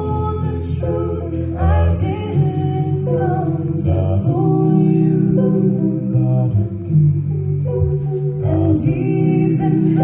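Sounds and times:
a cappella group singing: 0.0s - 10.0s
sung bass line: 0.0s - 10.0s.

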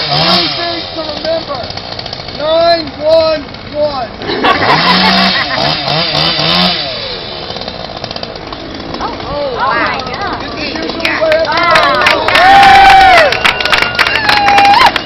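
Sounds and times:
chainsaw engine running: 0.0s - 15.0s.

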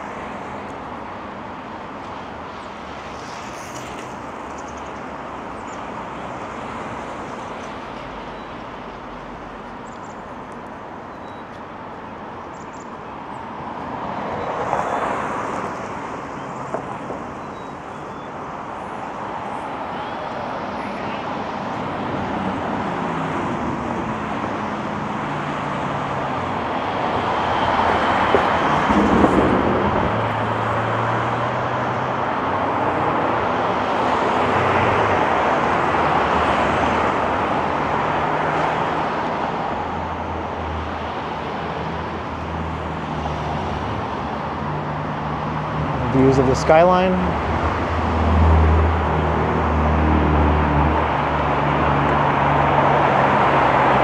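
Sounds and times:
cars passing: 0.0s - 54.0s.

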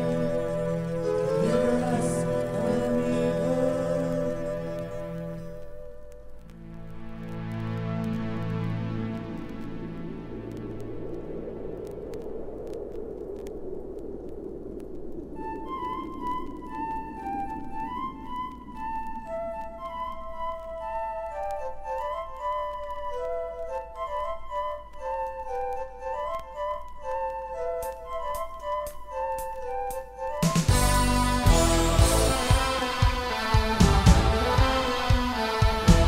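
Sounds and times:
flute-like high melody: 0.0s - 6.4s, 15.4s - 36.0s
low held chord: 30.7s - 36.0s.

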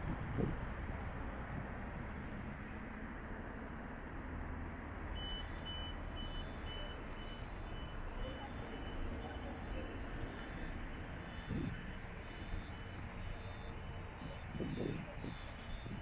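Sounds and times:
city traffic hum: 0.0s - 16.0s
crossing signal beeping: 5.1s - 16.0s.

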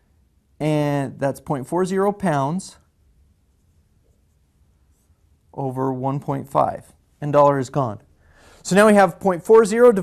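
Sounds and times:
room hum: 0.0s - 10.0s.

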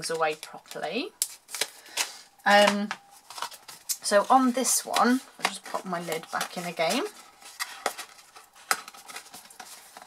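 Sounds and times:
card box clicks and rustles: 5.0s - 10.0s.

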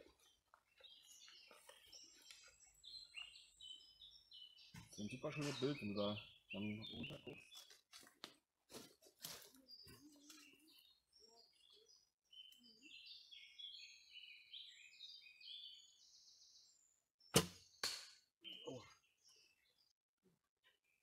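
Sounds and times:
birds chirping: 0.0s - 20.0s
faint arrow knock: 17.4s - 18.2s.

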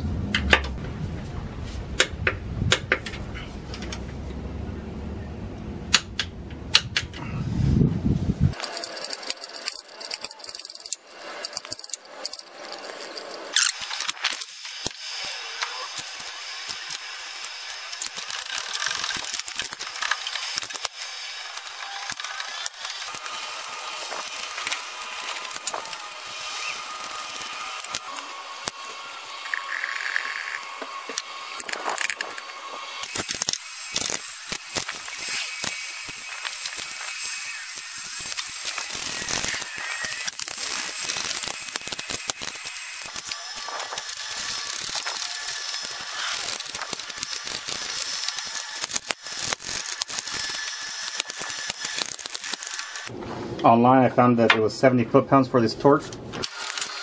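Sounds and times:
socket ratchet clicking: 8.6s - 14.8s.

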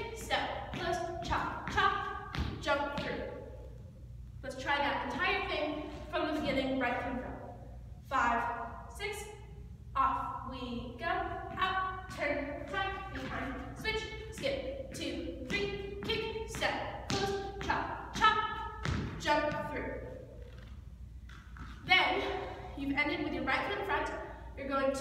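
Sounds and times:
dance shoes thumping on floor: 0.2s - 3.3s, 15.4s - 19.8s.

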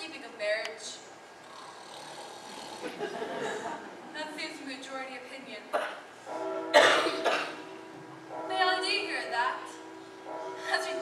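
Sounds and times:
steady held tones: 6.1s - 11.0s
person coughing: 6.8s - 7.6s.

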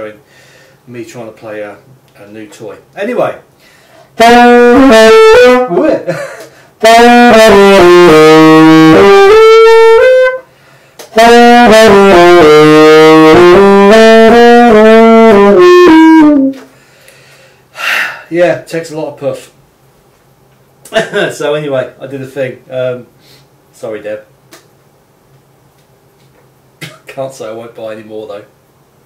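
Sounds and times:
tenor saxophone playing: 4.2s - 6.0s, 6.8s - 16.7s.

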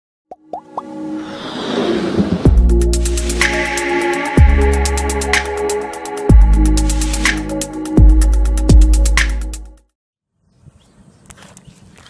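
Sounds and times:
electronic music build: 0.4s - 9.8s.

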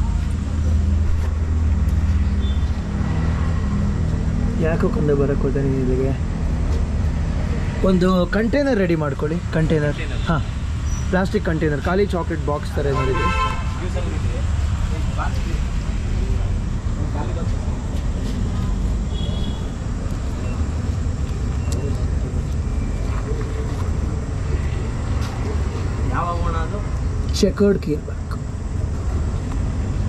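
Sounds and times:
street traffic rumble: 0.0s - 30.0s
car horn tooting: 12.9s - 13.9s.

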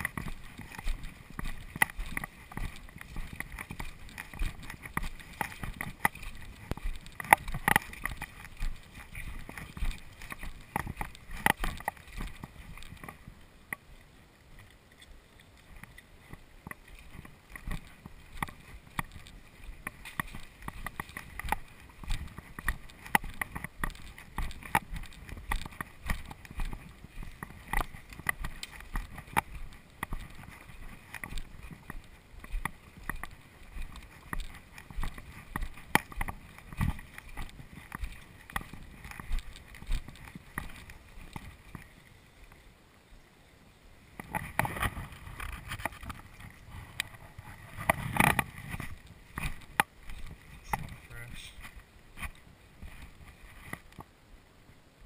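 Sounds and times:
small clicks and knocks: 0.0s - 13.9s, 14.6s - 42.6s, 44.1s - 54.1s
footsteps on muddy trail: 0.0s - 42.6s, 44.1s - 54.1s.

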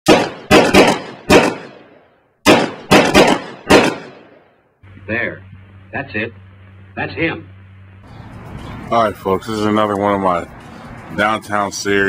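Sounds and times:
gunshots with echo: 0.1s - 4.5s.

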